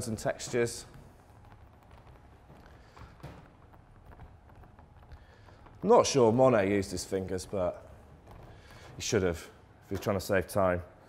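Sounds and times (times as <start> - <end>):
fingers tapping paint on canvas: 0.0 - 10.2.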